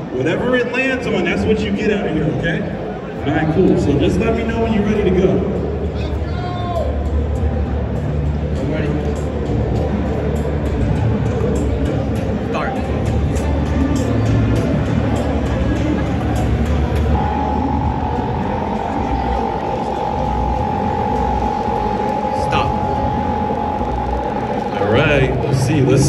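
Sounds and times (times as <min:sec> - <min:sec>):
crowd chatter: 0:00.0 - 0:26.0
music from pa system: 0:12.9 - 0:26.0
steady electronic tone: 0:17.0 - 0:26.0.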